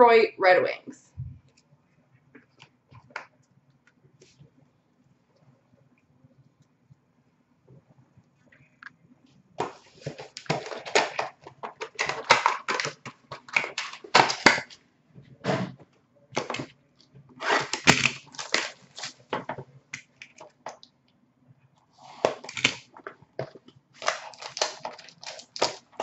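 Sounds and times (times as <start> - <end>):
plastic wrapping crackling: 9.6 - 14.8, 17.4 - 19.6, 22.2 - 26.0.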